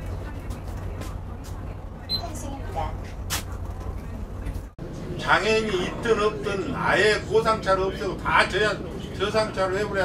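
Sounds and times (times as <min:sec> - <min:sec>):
bus engine and road rumble: 0:00.0 - 0:10.0
faint voices: 0:00.0 - 0:10.0.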